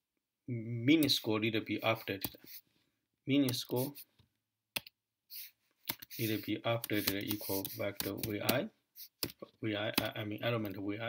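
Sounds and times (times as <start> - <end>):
soft hiss: 5.3 - 8.0.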